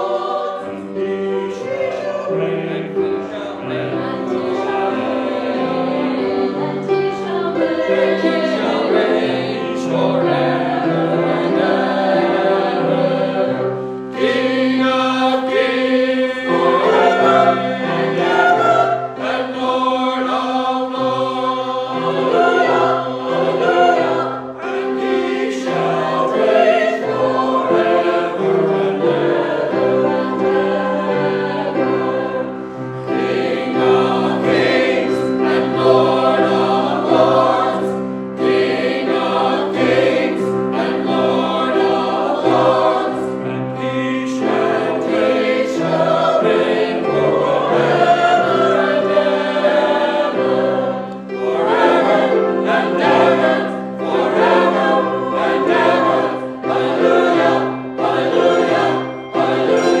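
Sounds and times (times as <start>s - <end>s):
choir singing a hymn: 0.0s - 60.0s.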